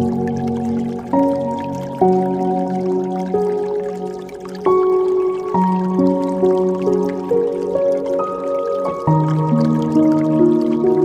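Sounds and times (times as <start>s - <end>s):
faint water dripping: 0.0s - 11.0s
slow soft piano melody: 0.0s - 11.0s.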